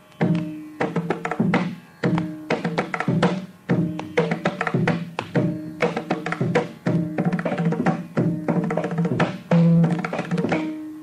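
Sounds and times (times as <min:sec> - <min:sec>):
mridangam drum strokes: 0:00.2 - 0:11.0.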